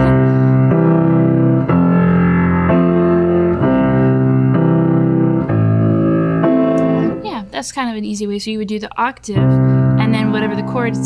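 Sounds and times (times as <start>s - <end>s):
hymn-style piano chords: 0.0s - 7.7s, 9.3s - 11.0s.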